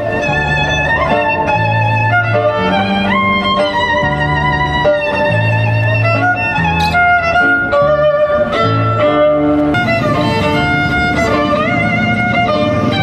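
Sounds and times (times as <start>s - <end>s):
bowed violin melody: 0.0s - 13.0s
low bass notes: 0.0s - 13.0s
plucked guitar-like chords: 0.0s - 13.0s.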